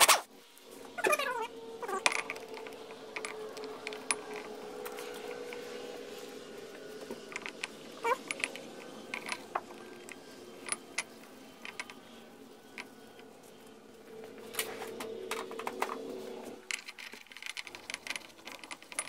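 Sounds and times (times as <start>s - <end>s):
faint steady hum: 0.3s - 19.0s.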